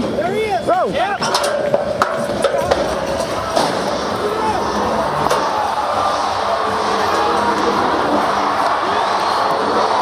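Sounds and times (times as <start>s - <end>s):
crowd noise: 0.0s - 10.0s
loud arena music: 1.9s - 10.0s.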